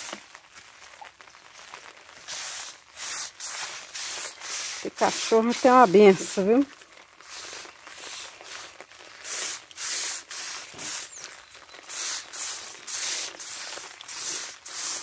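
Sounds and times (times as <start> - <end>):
pressure sprayer hissing squirts: 2.2 - 15.0.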